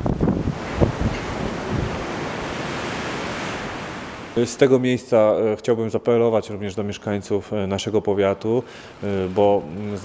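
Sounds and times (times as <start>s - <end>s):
strong wind buffeting microphone: 0.0s - 4.3s.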